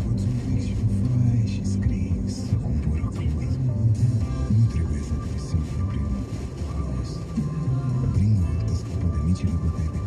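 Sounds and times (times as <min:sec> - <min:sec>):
car engine and road noise: 0:00.0 - 0:10.0
car radio music with singing: 0:00.0 - 0:10.0.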